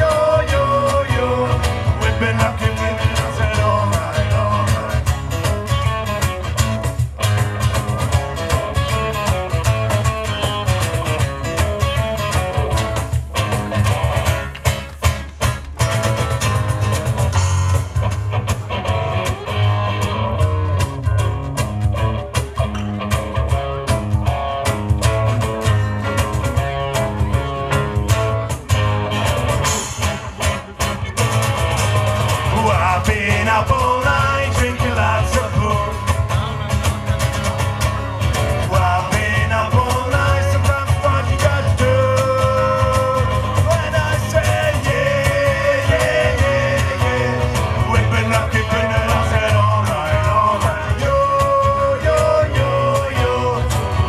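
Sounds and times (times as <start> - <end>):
bass: 0.0 - 54.0
drums with steady beat: 0.0 - 54.0
guitar: 0.0 - 54.0.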